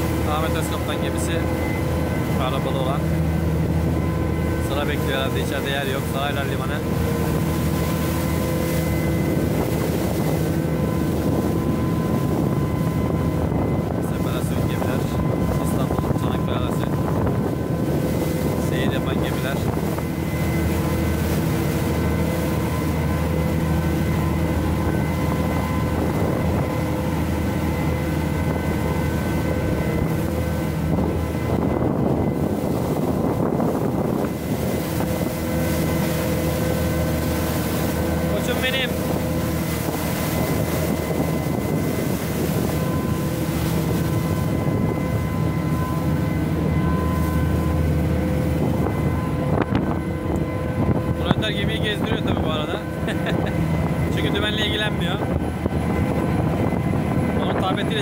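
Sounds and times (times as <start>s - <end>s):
water rushing along a hull: 0.0s - 58.0s
wind on microphone: 0.0s - 58.0s.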